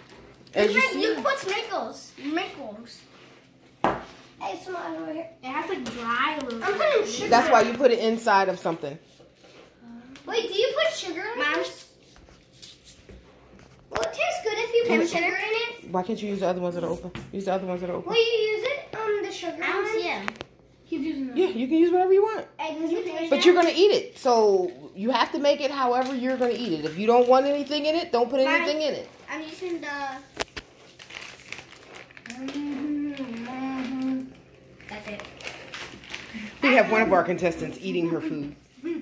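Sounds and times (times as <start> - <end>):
packaging crinkling: 25.6 - 28.8, 29.4 - 37.2.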